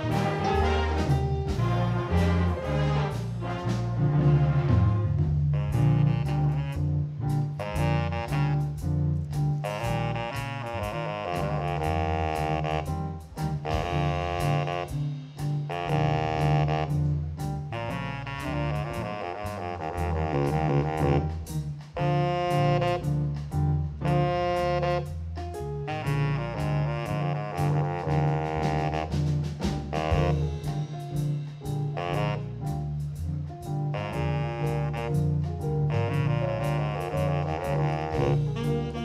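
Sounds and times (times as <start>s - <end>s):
baritone saxophone solo: 0.0s - 39.0s
drums with ride cymbal: 0.0s - 39.0s
walking bass line: 0.0s - 39.0s.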